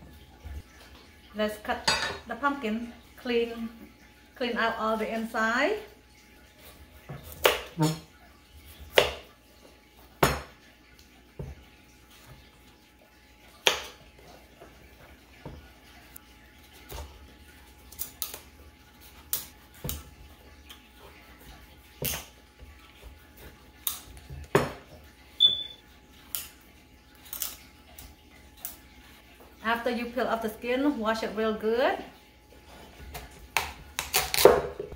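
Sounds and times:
high squeak: 0:25.4 - 0:25.8.

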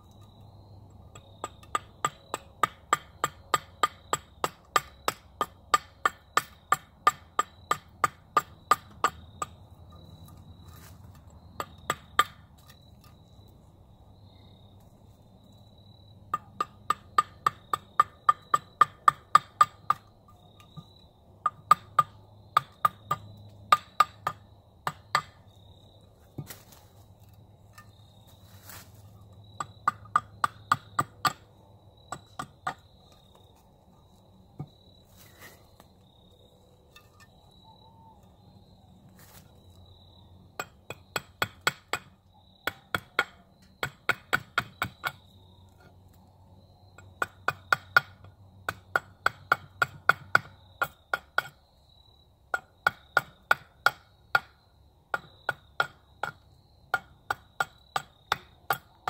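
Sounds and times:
hatchet chopping wood: 0:01.0 - 0:13.5, 0:16.3 - 0:25.7, 0:26.4 - 0:28.0, 0:28.6 - 0:33.6, 0:34.6 - 0:35.5, 0:40.5 - 0:45.8, 0:47.0 - 0:51.6, 0:52.5 - 0:59.0.

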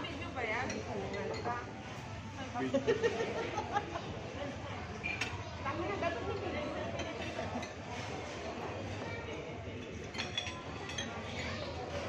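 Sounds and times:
cutlery clinking on plates: 0:06.9 - 0:08.5, 0:09.8 - 0:12.0.

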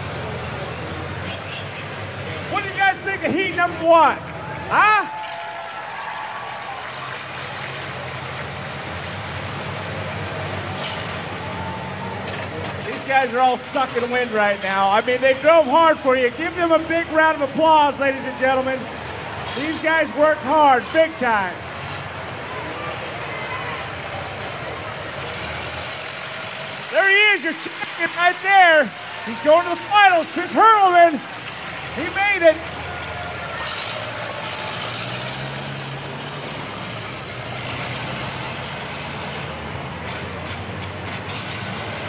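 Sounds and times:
old car engines idling: 0:00.0 - 0:42.0
faint voices: 0:10.2 - 0:35.6
faint crowd chatter: 0:18.8 - 0:26.9.

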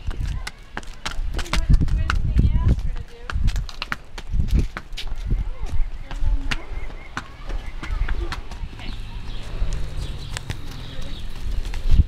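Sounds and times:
hooves clopping on concrete: 0:00.0 - 0:12.0.

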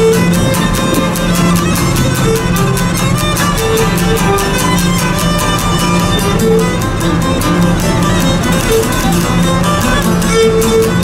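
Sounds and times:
bowed lyra melody: 0:00.0 - 0:11.0
lute strumming: 0:00.0 - 0:11.0.

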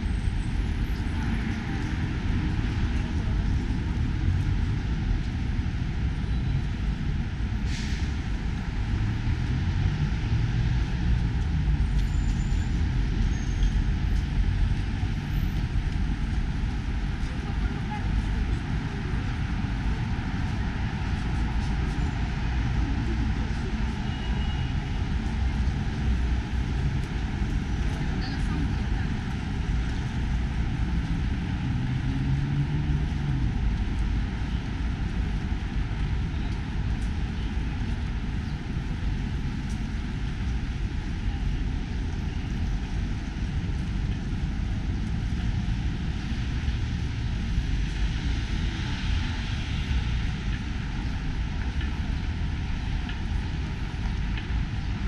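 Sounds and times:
city traffic rumble: 0:00.0 - 0:55.0.

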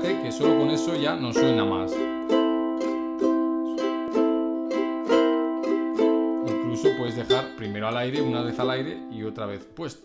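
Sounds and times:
ukulele strummed in blues shuffle: 0:00.0 - 0:09.7.

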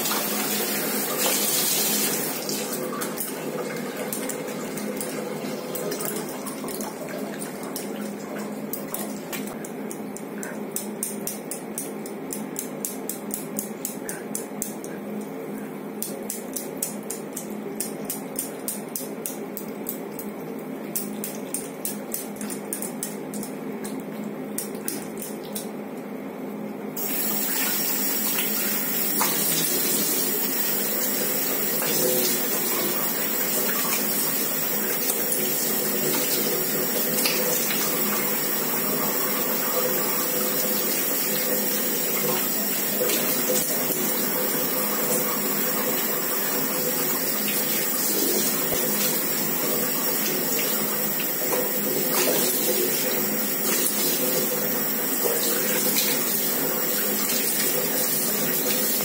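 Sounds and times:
tap water running into basin: 0:00.0 - 0:09.6, 0:27.0 - 0:59.0.

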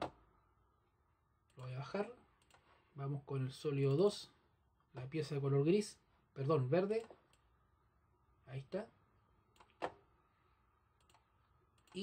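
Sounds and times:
computer mouse clicks: 0:02.4 - 0:02.7, 0:09.5 - 0:10.0, 0:11.0 - 0:12.0.

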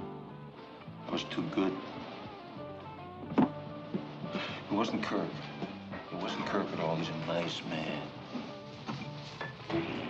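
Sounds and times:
film background music: 0:00.0 - 0:10.0.

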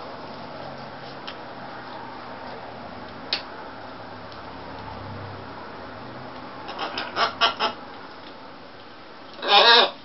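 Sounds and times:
macaw calling: 0:06.7 - 0:07.8, 0:09.4 - 0:10.0.

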